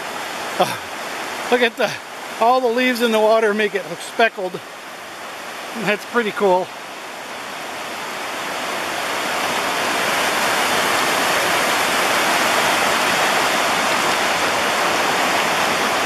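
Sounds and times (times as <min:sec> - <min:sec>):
river water rushing over rocks: 0:00.0 - 0:16.0.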